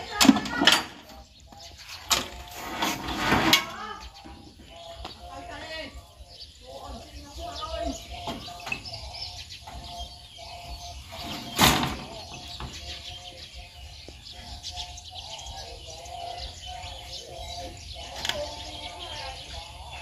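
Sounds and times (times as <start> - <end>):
birds chirping and calling: 0.0 - 20.0.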